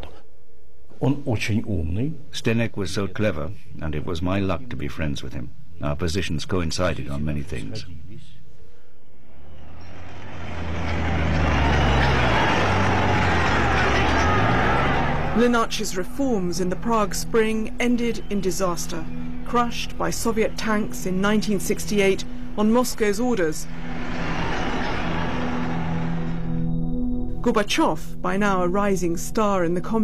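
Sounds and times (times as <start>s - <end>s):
low music drone: 9.1s - 29.8s
heavy vehicle engine humming: 9.2s - 26.7s.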